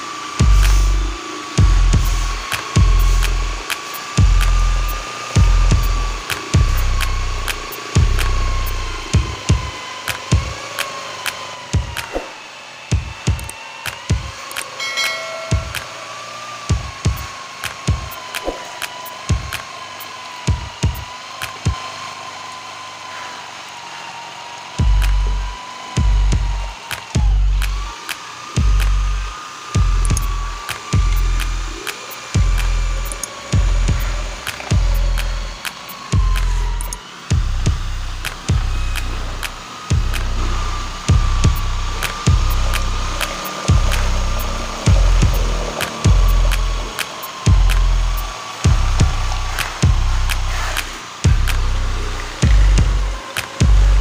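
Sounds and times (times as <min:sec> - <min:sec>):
music with heavy beat: 0:00.0 - 0:12.3, 0:12.9 - 0:21.8, 0:24.8 - 0:54.0
electric drill mixer whine: 0:00.0 - 0:54.0.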